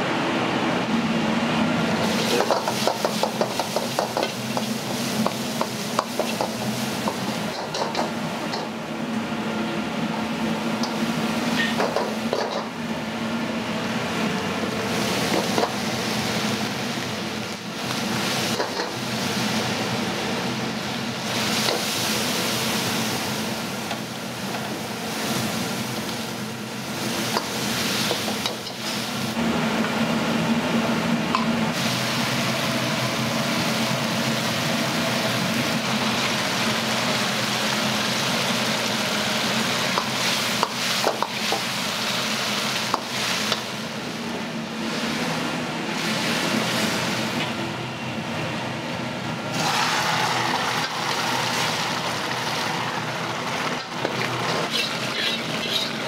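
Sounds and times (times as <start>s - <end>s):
food sizzling and bubbling in a wok: 0.0s - 56.0s
gas burner flame: 0.0s - 56.0s
liquid sizzling on hot wok: 2.0s - 8.9s, 10.6s - 12.9s, 14.0s - 30.4s, 31.4s - 47.7s, 49.4s - 56.0s.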